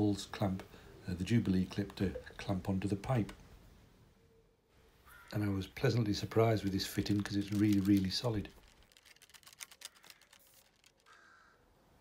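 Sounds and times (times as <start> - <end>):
faint rapid clicks: 6.9 - 11.2.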